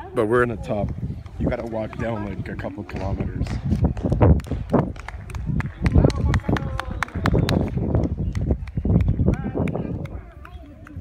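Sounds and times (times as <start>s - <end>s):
people talking nearby: 0.0s - 11.0s
footsteps on stone paving: 0.8s - 5.6s.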